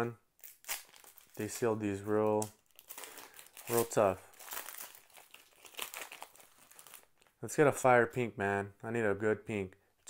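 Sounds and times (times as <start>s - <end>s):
foil wrapper crinkling: 0.4s - 7.3s.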